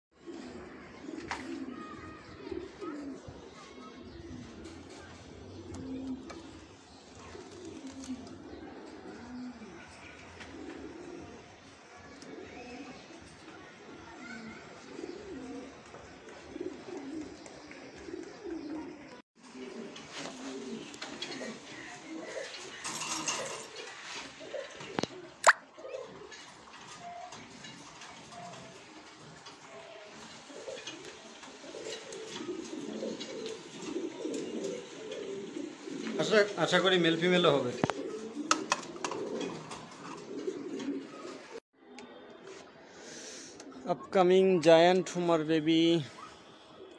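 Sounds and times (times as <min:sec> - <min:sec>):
pigeons cooing: 0:00.2 - 0:46.9.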